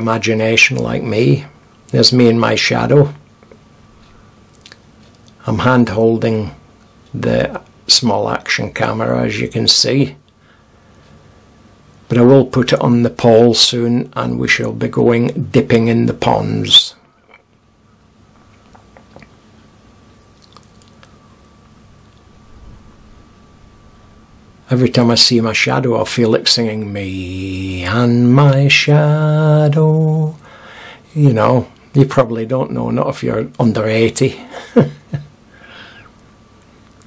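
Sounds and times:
man's voice: 0.0 - 3.2, 5.4 - 6.6, 7.2 - 10.2, 12.1 - 17.0, 24.7 - 30.4, 31.1 - 34.5
low rumble: 22.4 - 24.5.

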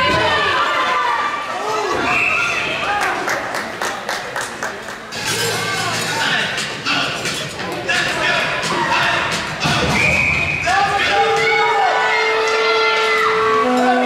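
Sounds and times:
spectators shouting and cheering: 0.0 - 3.8, 5.1 - 14.0.

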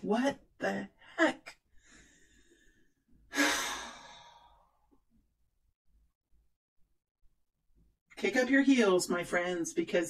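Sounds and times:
person sighing: 3.3 - 4.7.

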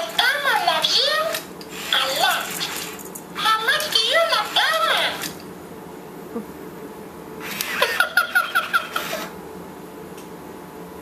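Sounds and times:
toy giggling: 7.8 - 9.3.

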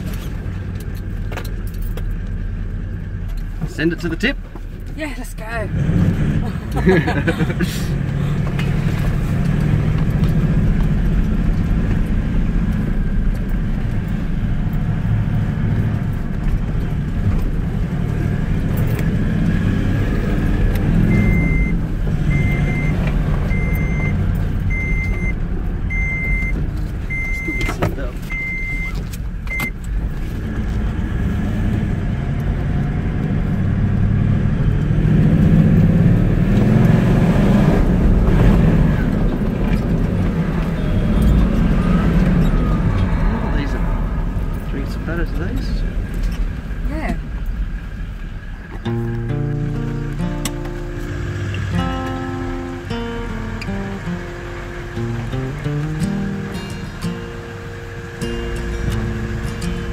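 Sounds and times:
car engine droning: 0.0 - 59.9
short high beeps: 21.1 - 28.9.

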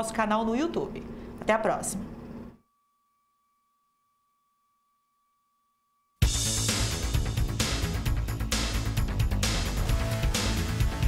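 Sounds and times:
faint steady high tone: 2.0 - 6.2.

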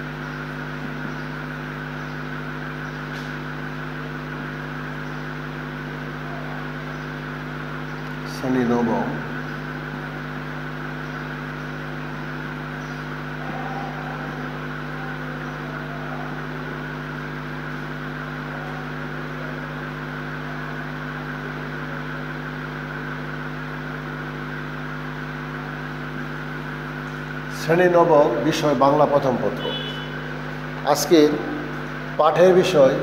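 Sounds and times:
machine hum: 0.0 - 33.0.

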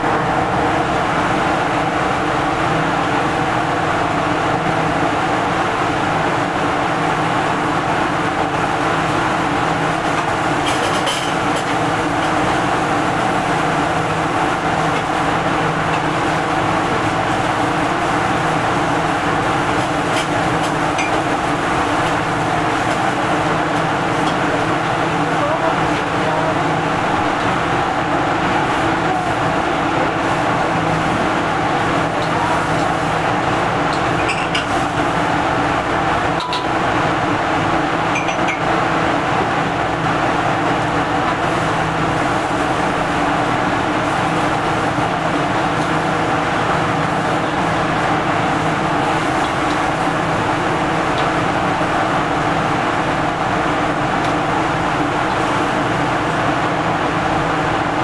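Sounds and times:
exhaust hood fan humming: 0.0 - 58.0
gas burner roaring: 0.0 - 58.0.

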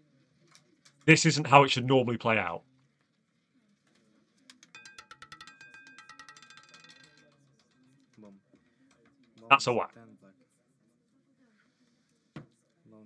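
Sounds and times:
roulette ball clattering: 4.4 - 9.5.

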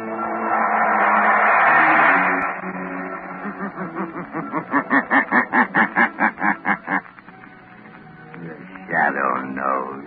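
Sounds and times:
man's deep sinister laugh: 3.3 - 7.1.

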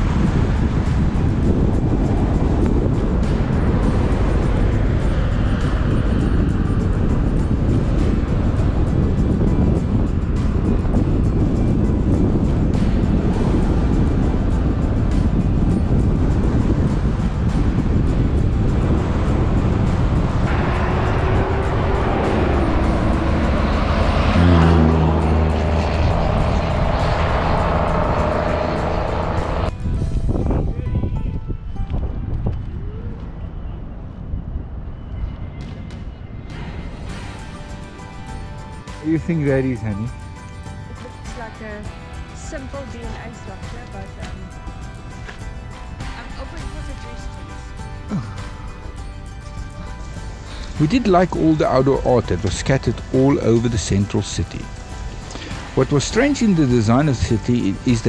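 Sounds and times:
background music: 0.0 - 32.3, 35.6 - 58.0
road and wind noise: 0.0 - 58.0
loud pitched hum: 17.8 - 29.7.

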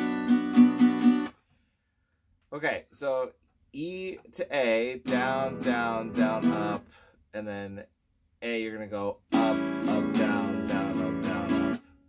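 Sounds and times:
acoustic guitar strumming chord: 0.0 - 1.4, 5.0 - 6.8, 9.3 - 12.0.

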